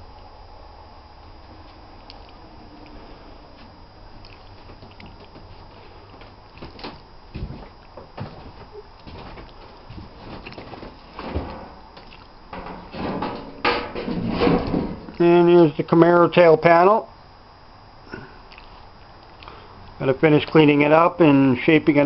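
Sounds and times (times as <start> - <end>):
low steady hum: 0.0 - 22.0.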